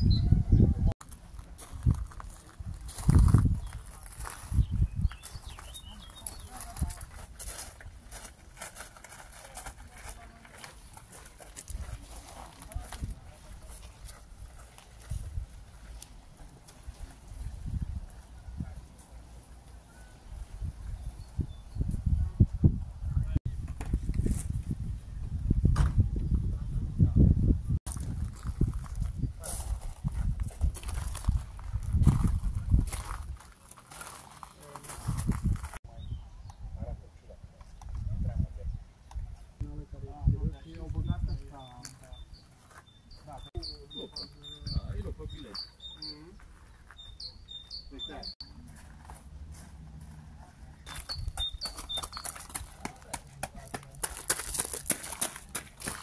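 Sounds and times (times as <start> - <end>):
bird chirps: 0.0 - 0.6, 3.6 - 6.7, 40.5 - 48.7, 50.8 - 52.6
footsteps on gravel: 1.0 - 17.6, 27.9 - 35.8, 45.4 - 56.0
people talking: 5.8 - 7.1, 9.3 - 10.8, 39.6 - 42.2, 43.2 - 46.4, 47.9 - 48.4, 52.6 - 54.2.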